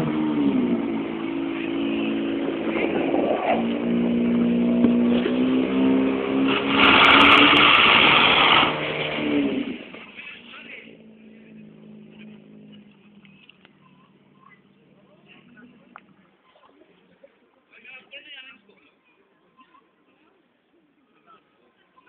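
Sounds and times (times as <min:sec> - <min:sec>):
pump engine running: 0:04.0 - 0:13.6.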